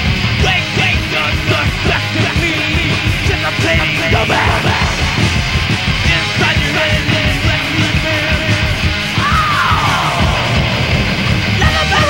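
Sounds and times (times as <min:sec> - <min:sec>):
distorted electric guitars: 0:00.0 - 0:12.0
fast busy drums: 0:00.0 - 0:12.0.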